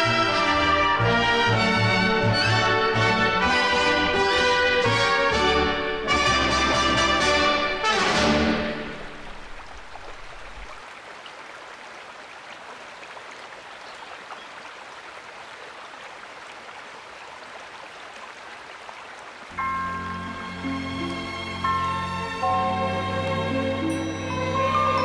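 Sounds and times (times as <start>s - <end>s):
orchestra with brass playing: 0.0s - 9.8s, 19.5s - 25.0s
waterfall rushing: 1.8s - 25.0s.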